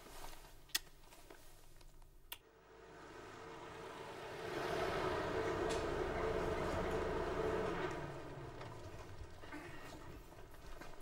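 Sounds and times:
car driving by: 2.5 - 10.4.

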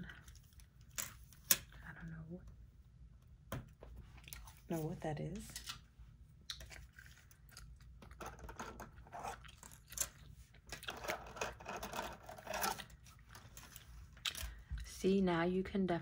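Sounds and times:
gum chewing: 6.4 - 8.2, 8.9 - 11.0.

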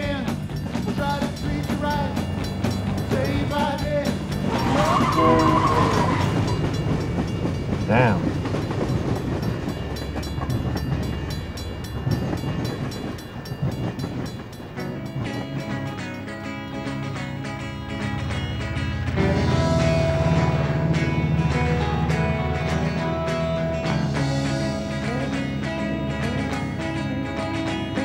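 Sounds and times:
music: 0.0 - 28.0
train wheels rumbling on rails: 0.0 - 28.0
train horn: 4.5 - 6.8.

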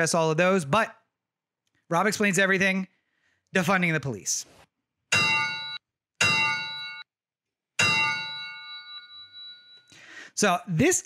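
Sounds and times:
metallic clangs: 5.1 - 7.0, 7.8 - 9.9.

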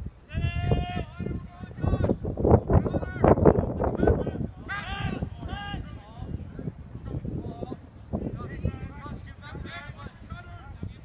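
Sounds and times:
person shouting a long call: 0.3 - 2.2, 4.0 - 6.2
other voices: 0.3 - 11.0.

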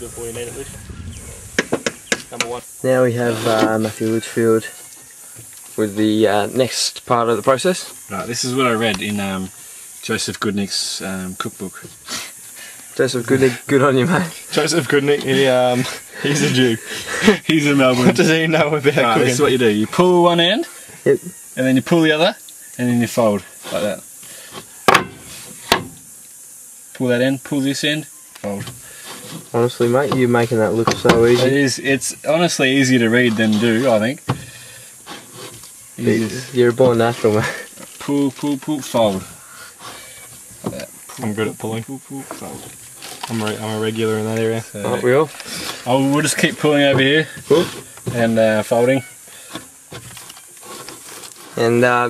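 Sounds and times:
steady hiss: 0.0 - 52.0.

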